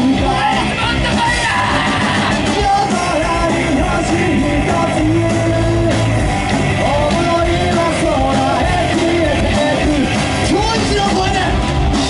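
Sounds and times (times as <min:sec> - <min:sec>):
singer shouting and singing: 0:00.0 - 0:11.8
rock band with horns playing: 0:00.0 - 0:12.0.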